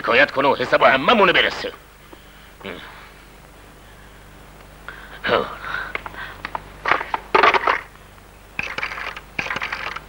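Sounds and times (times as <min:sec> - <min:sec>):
phone dialling clicks and rattles: 0:06.0 - 0:07.9, 0:08.6 - 0:10.0.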